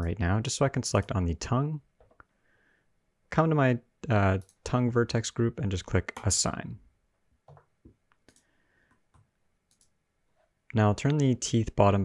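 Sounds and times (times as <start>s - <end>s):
faint computer mouse clicks: 7.5s - 8.5s, 9.1s - 9.9s.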